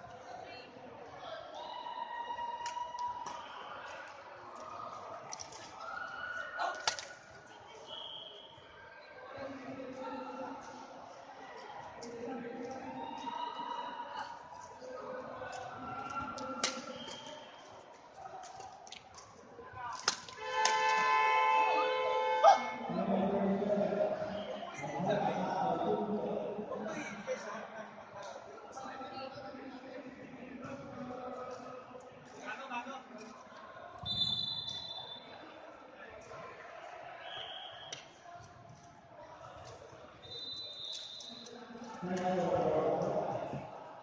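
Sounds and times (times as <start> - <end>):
rackets hitting shuttlecock: 6.8 - 7.2, 16.6 - 17.2, 19.9 - 21.1
echoing background voices: 9.0 - 20.1, 22.7 - 34.0, 41.3 - 44.0.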